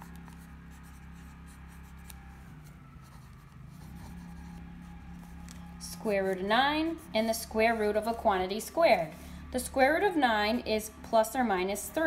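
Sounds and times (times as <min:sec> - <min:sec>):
pen scratching on paper: 0:00.0 - 0:07.9
low steady hum: 0:00.0 - 0:12.0.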